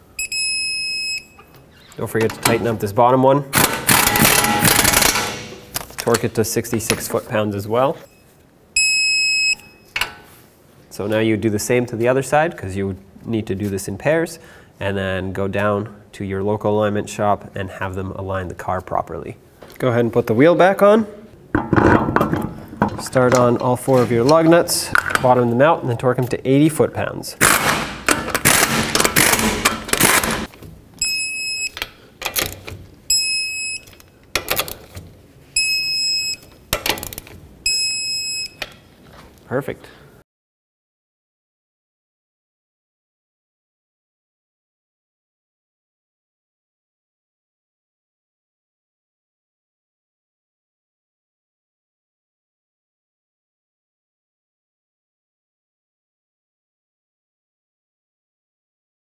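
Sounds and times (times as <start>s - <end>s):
torque wrench beep: 0.2s - 1.6s, 8.8s - 10.0s, 31.0s - 31.8s, 33.1s - 34.1s, 35.6s - 36.5s, 37.6s - 38.6s
pneumatic impact gun hammering: 3.6s - 5.7s, 27.4s - 30.5s.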